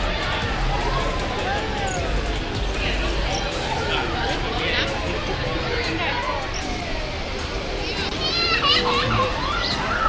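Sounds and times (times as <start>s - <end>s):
crowd chatter: 0.0s - 10.0s
children's voices: 3.0s - 10.0s.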